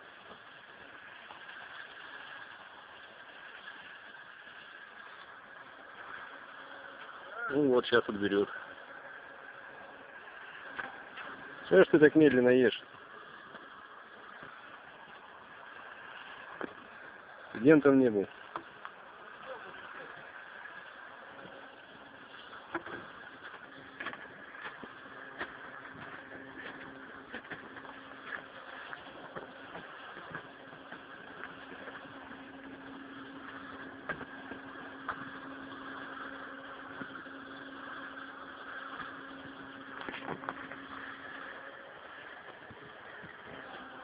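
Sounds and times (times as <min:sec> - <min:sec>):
engine droning: 0:00.0 - 0:44.0
low even hum: 0:00.0 - 0:44.0.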